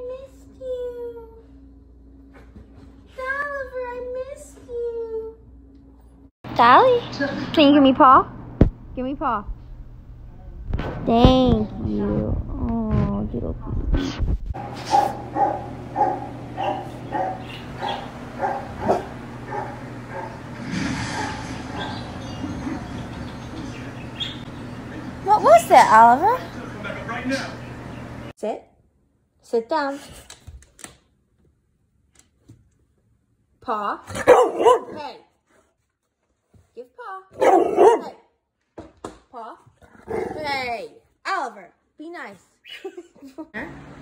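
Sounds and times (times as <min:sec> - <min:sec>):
dog barking: 0:14.8 - 0:20.4, 0:34.1 - 0:35.2, 0:37.3 - 0:38.2.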